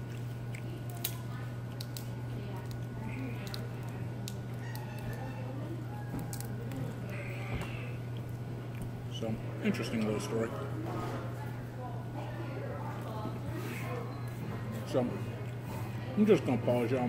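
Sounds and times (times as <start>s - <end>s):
murmur of diners' voices: 0.0s - 17.0s
steady low hum: 0.0s - 17.0s.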